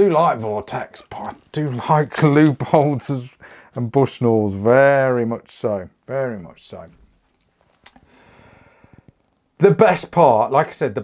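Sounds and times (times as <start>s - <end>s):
man breathing in: 3.4s - 3.8s, 8.0s - 9.1s.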